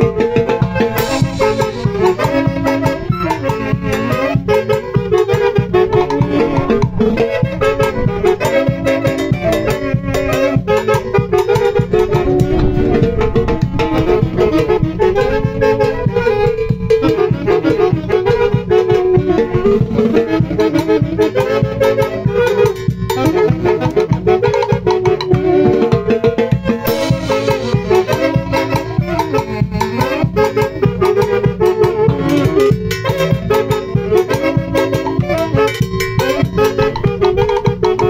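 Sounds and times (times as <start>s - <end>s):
drum kit beat: 0.0s - 38.0s
live band playing dance music: 0.0s - 38.0s.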